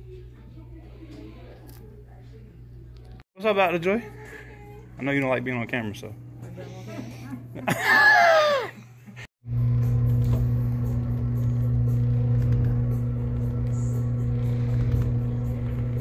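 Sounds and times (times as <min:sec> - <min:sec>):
low machine hum: 0:09.0 - 0:16.0.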